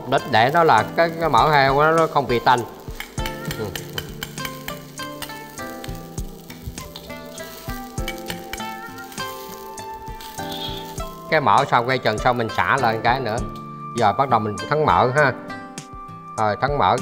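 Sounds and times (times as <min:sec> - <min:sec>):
water boiling in a wok: 0:00.0 - 0:13.5
background music: 0:00.0 - 0:17.0
metal ladle clinking on pan: 0:00.4 - 0:11.3.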